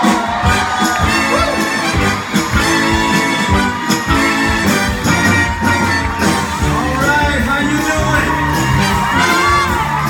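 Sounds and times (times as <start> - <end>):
crowd whooping and cheering: 0.0 - 10.0
live band with horns playing: 0.0 - 10.0.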